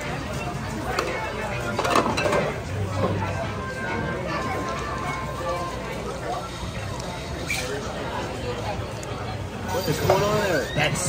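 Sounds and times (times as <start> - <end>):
restaurant chatter: 0.0 - 11.0
plates and cutlery clinking: 1.7 - 2.6.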